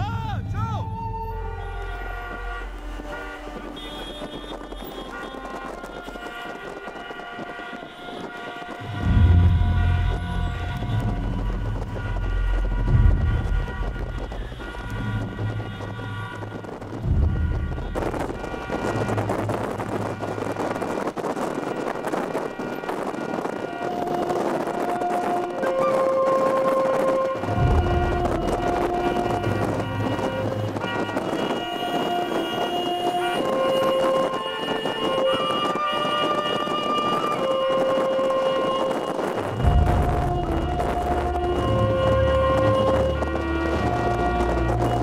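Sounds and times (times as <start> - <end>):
car horns honking: 0.0 - 45.0
wind buffeting microphone: 0.0 - 45.0
wind and road noise hiss: 1.6 - 45.0.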